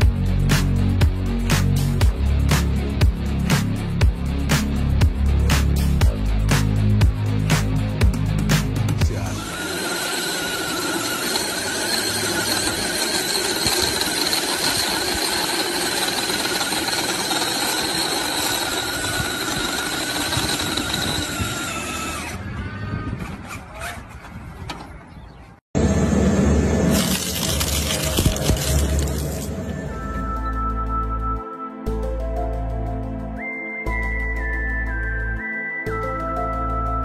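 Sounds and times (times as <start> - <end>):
music: 0.0 - 9.6, 28.1 - 37.0
toy truck electric motor whining: 9.1 - 24.2, 26.7 - 30.0
tyre squeal: 9.4 - 24.3.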